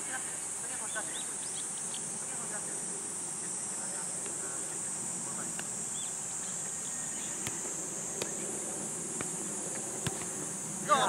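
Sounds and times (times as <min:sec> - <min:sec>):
cicada chorus drone: 0:00.0 - 0:11.0
football kicked on grass: 0:07.3 - 0:08.5, 0:09.1 - 0:10.4.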